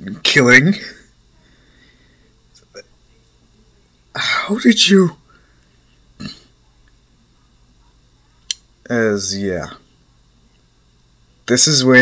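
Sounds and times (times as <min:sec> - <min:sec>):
man speaking: 0:00.0 - 0:01.1, 0:04.2 - 0:05.2, 0:08.9 - 0:09.8, 0:11.5 - 0:12.0.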